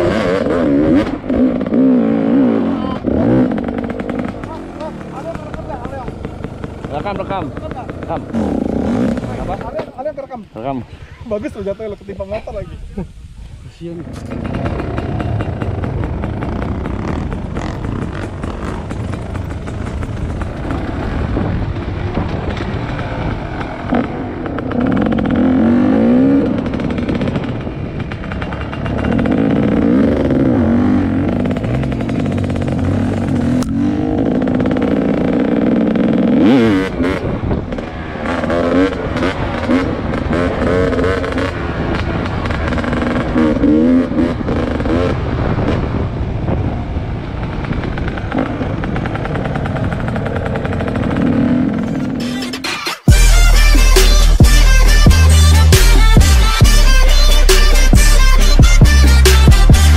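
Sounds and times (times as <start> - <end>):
dirt bike engine revving: 0.0 - 11.7, 14.0 - 59.9.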